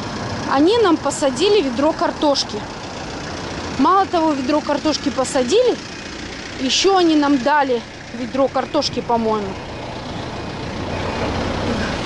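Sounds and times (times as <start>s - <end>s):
tyre and road noise: 0.0s - 12.0s
vehicle engine rumble: 0.0s - 12.0s.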